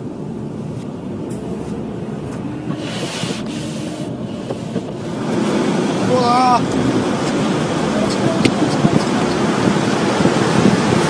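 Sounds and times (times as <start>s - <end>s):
car road and engine noise: 0.0s - 11.0s
brief hiss: 2.7s - 4.8s.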